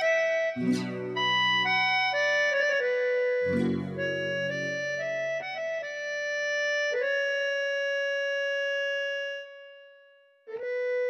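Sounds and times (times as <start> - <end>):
electronic keyboard sustained note: 0.0 - 6.0.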